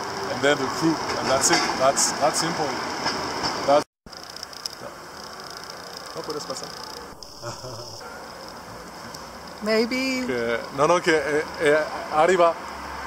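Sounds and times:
low steady street noise: 0.0s - 13.0s.

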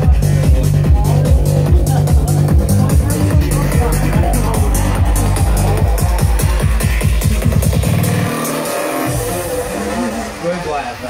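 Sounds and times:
kick drum beat: 0.0s - 8.2s
low bass: 0.0s - 11.0s.

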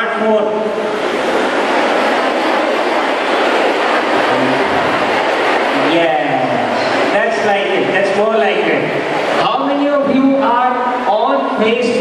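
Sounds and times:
large audience crowd noise: 0.0s - 12.0s.

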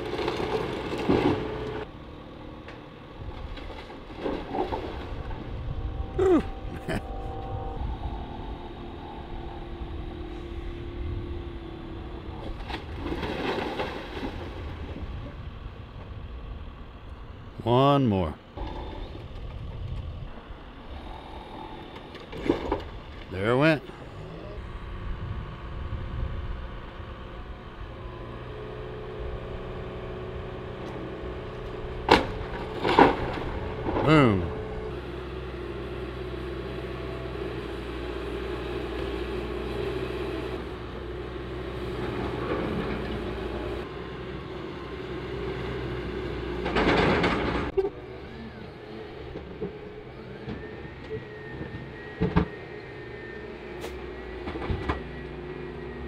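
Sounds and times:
excavator diesel engine: 0.0s - 56.0s
high whine: 5.1s - 11.5s
timber and roofing crashing: 12.6s - 14.8s, 32.0s - 34.2s.

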